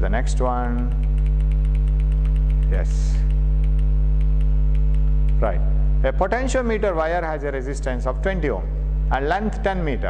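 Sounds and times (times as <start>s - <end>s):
electrical mains hum: 0.0s - 10.0s
faint regular ticking: 0.4s - 5.5s.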